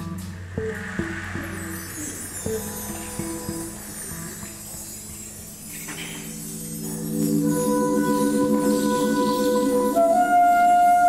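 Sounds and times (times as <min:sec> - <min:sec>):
marimba notes: 0:00.0 - 0:11.0
soft percussion: 0:00.0 - 0:11.0.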